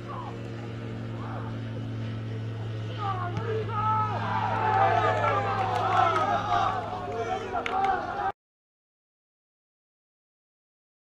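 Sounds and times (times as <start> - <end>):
steady low hum: 0.0 - 8.3
faint shouts of players: 3.0 - 8.4.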